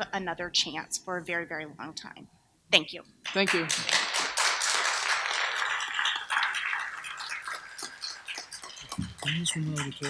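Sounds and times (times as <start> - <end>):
audience applauding: 3.3 - 10.0.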